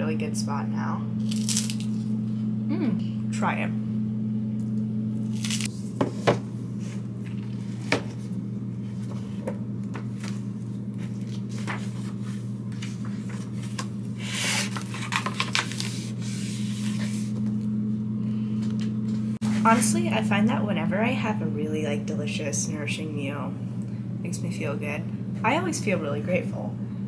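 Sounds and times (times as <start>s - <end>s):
steady low hum: 0.0s - 27.0s
pages rustling: 11.0s - 17.4s.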